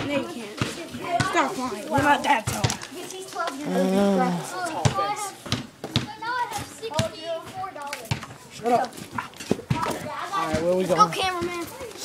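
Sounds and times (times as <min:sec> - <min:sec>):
children talking indistinctly: 0:00.0 - 0:12.0.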